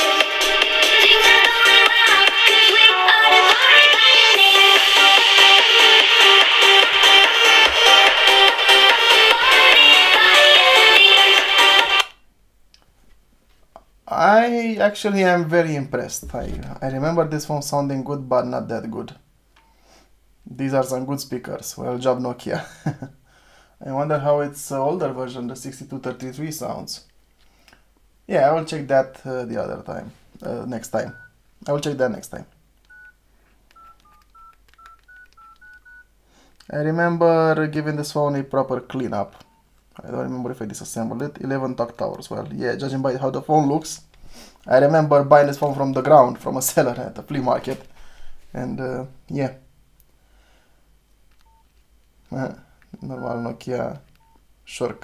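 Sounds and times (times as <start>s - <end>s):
music from phone loudspeaker: 0.0s - 12.1s.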